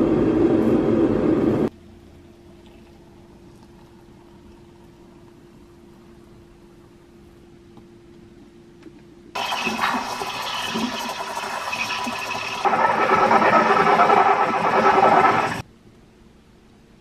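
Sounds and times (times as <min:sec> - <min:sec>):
steam wand frothing milk: 0:09.4 - 0:15.6.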